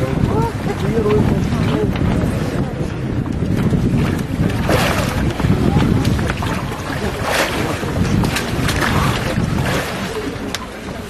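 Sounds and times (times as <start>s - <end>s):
water splashing: 0.0s - 11.0s
wind rumbling on microphone: 0.0s - 11.0s.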